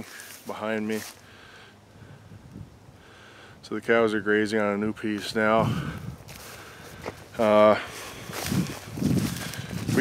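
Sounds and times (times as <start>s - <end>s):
faint steady hiss: 0.0s - 8.6s.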